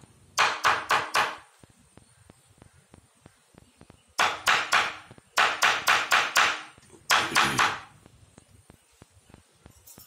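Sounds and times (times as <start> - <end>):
hammer striking metal sheet: 4.2 - 7.9.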